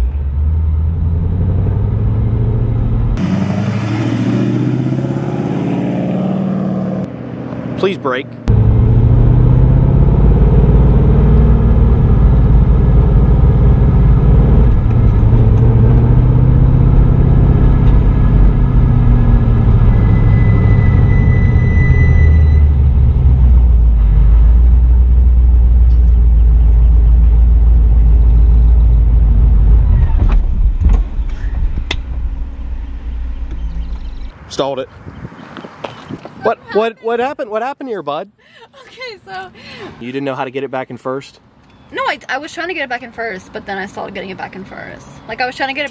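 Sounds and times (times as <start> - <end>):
car engine running at low revs: 0.0 - 34.4.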